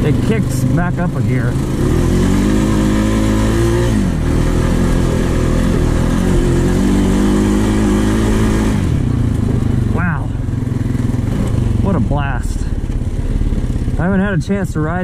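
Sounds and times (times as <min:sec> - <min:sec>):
atv engine revving: 0:00.0 - 0:15.0.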